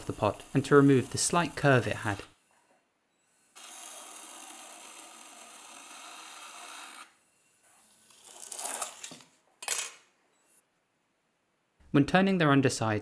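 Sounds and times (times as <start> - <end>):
scraper rasping clay: 0.0 - 2.2.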